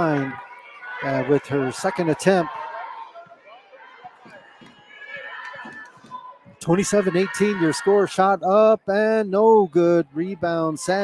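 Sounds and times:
crowd talking quietly: 0:00.0 - 0:11.0.

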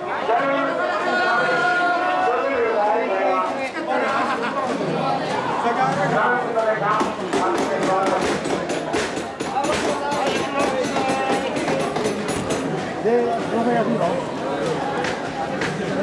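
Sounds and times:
crowd chanting and calling: 0:00.0 - 0:16.0
sharp clacks: 0:06.6 - 0:12.9.

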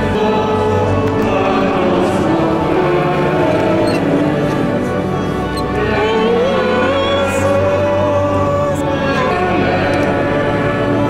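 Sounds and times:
choir singing sacred music: 0:00.0 - 0:11.0.

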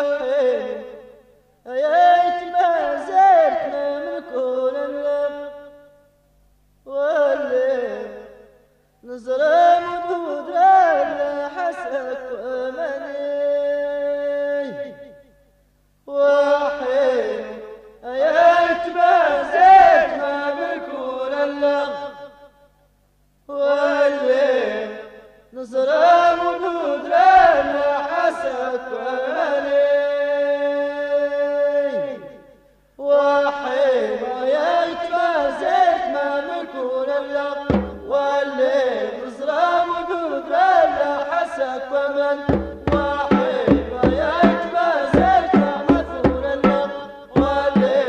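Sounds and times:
person singing folk song: 0:00.0 - 0:05.9, 0:06.8 - 0:15.4, 0:16.0 - 0:22.4, 0:23.4 - 0:48.0
chanted singing: 0:16.3 - 0:22.1, 0:33.0 - 0:48.0.

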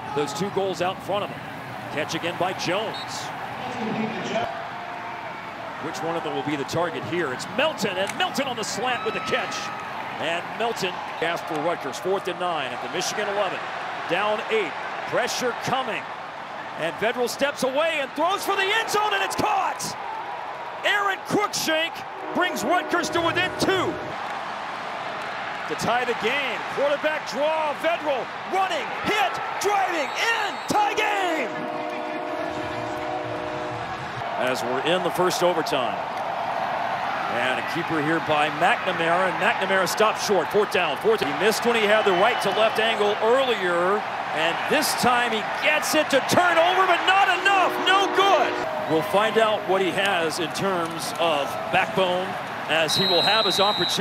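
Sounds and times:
football stadium ambience: 0:00.0 - 0:54.0
held chord of steady tones: 0:46.8 - 0:49.0.

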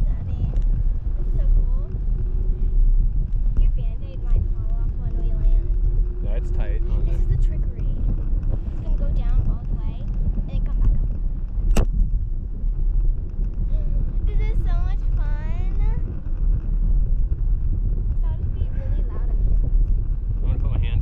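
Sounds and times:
wind buffeting microphone: 0:00.0 - 0:21.0
sharp click: 0:11.7 - 0:11.9.

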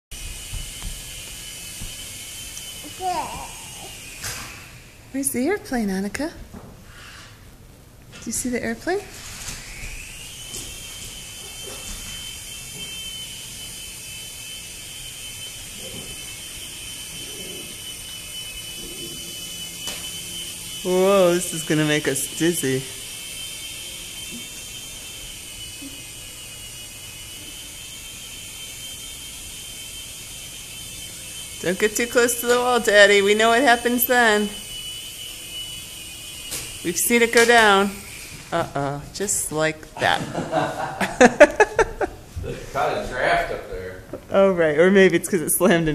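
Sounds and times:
model airplane motor buzzing: 0:00.2 - 0:06.2, 0:08.3 - 0:39.6.

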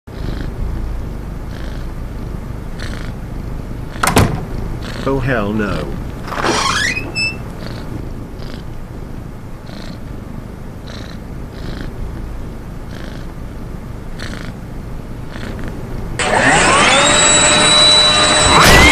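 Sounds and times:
cat purring: 0:00.1 - 0:16.2
loud rising and held tones: 0:16.2 - 0:18.9.

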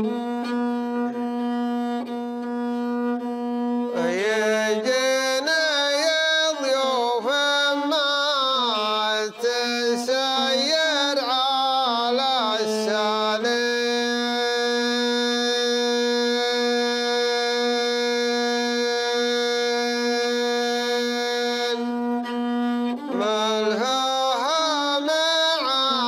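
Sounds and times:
bowed fiddle playing: 0:00.0 - 0:26.0.

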